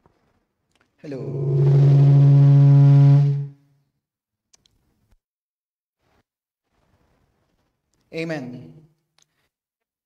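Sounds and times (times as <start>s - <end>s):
people talking: 1.0s - 1.8s, 8.2s - 8.8s
man holding long low note: 1.1s - 3.6s.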